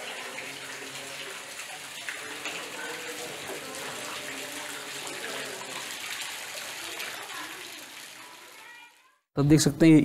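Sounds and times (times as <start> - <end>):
water splashing into a pool: 0.0 - 9.2.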